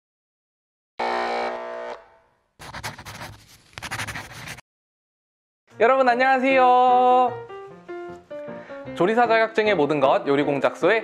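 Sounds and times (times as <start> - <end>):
crackling electric buzz: 1.0 - 2.3.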